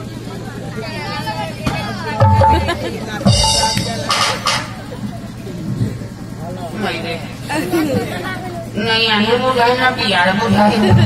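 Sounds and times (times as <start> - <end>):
voices talking: 0.1 - 11.0.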